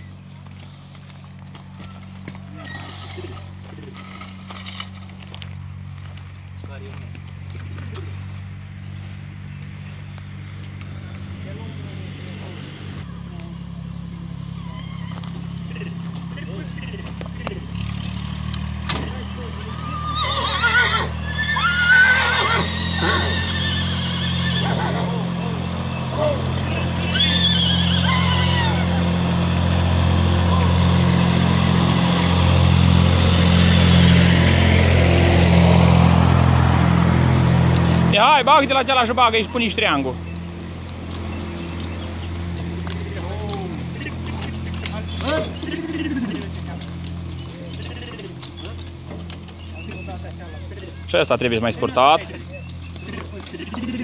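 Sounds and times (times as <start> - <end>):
low engine drone: 0.0 - 54.0
horse whinnying: 2.5 - 3.5, 14.6 - 15.9, 19.7 - 29.1, 43.0 - 46.8.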